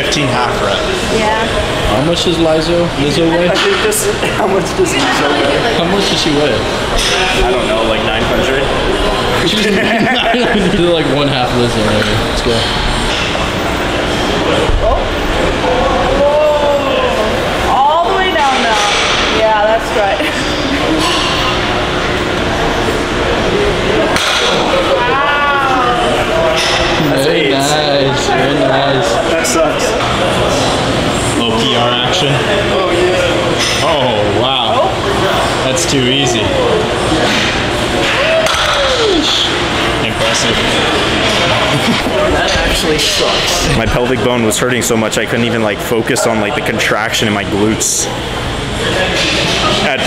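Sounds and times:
gym background noise: 0.0 - 50.0.

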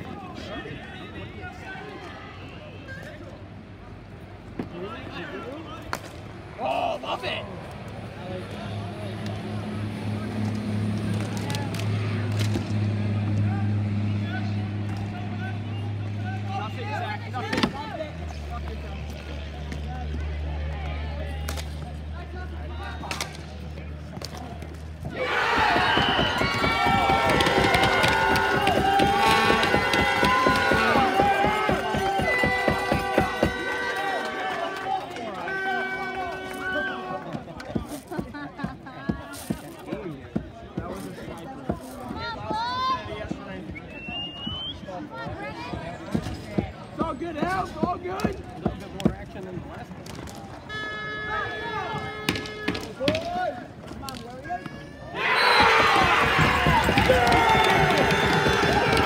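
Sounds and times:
people's voices: 0.0 - 59.0.

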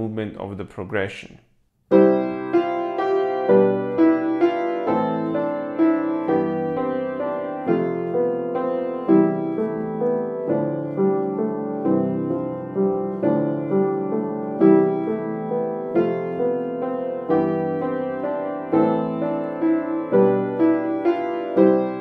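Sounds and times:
upright piano playing chords: 1.9 - 22.0.

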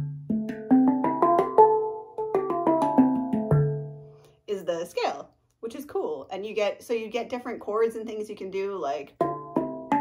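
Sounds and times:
handpan notes: 0.0 - 4.2, 9.2 - 10.0.

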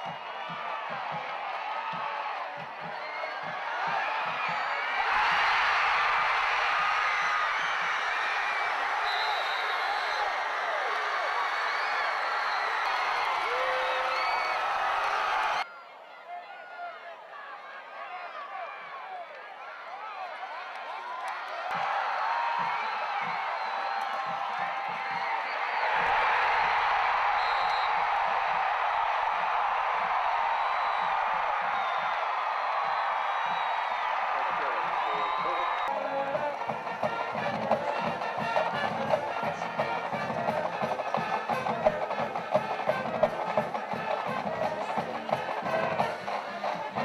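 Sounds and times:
drum and percussion music: 0.0 - 6.6, 21.7 - 27.4, 34.8 - 47.0
crowd cheering and shouting: 0.0 - 47.0.

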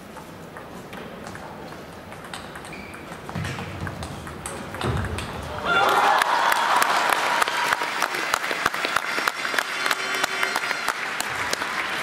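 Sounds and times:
table tennis ball clicking: 0.6 - 5.4.

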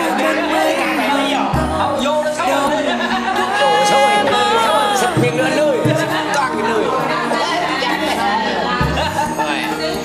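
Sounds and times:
background music: 0.0 - 10.0
men chatting: 0.0 - 10.0.

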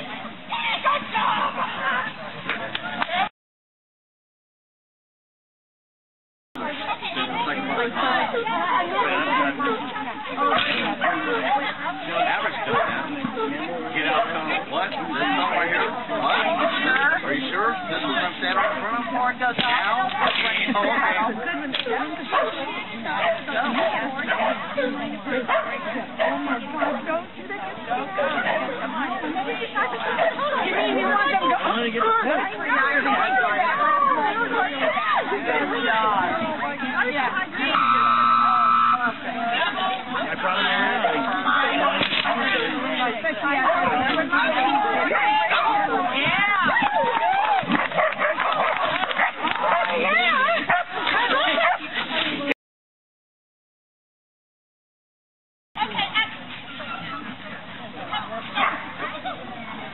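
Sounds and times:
crowd chatter and calls: 0.0 - 3.3, 6.6 - 52.6, 55.8 - 59.9
people talking: 0.0 - 3.3, 6.6 - 52.6, 55.8 - 59.9
dog barking: 18.5 - 18.9, 22.3 - 22.6, 25.5 - 27.0, 47.7 - 50.9, 51.6 - 51.8.

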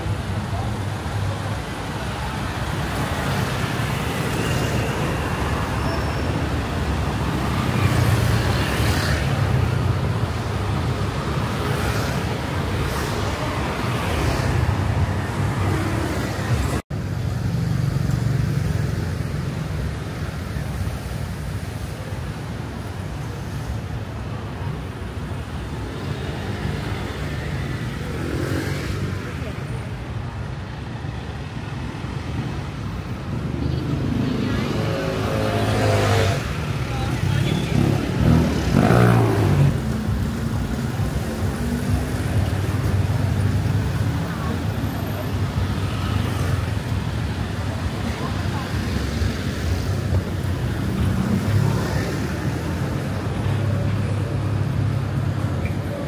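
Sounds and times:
cars and motorbikes passing: 0.0 - 56.0.

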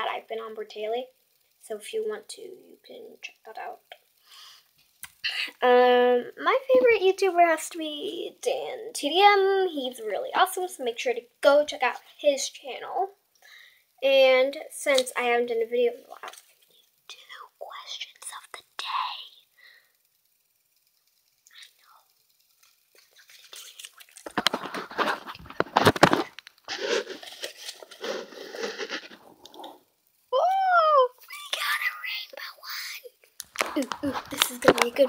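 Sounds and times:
sharp clicks: 4.9 - 5.2
girl whispering: 17.1 - 19.5, 30.8 - 35.0
handling and rustling on microphone: 23.3 - 29.7, 33.4 - 35.0.

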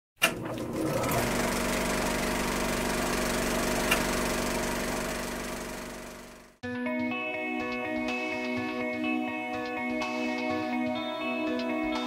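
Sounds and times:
small engine droning: 0.6 - 6.6.

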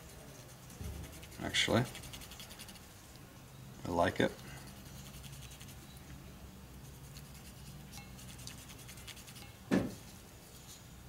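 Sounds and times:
scratchy rubbing on leather: 0.0 - 2.9, 4.7 - 5.9, 6.8 - 9.5
low steady hum: 0.0 - 11.0
short thump: 9.7 - 10.0.

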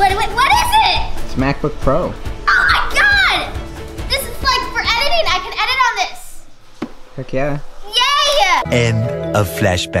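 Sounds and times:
girl exclaiming excitedly: 0.0 - 1.1, 2.4 - 6.3, 7.8 - 8.6
faint background music: 0.0 - 10.0.

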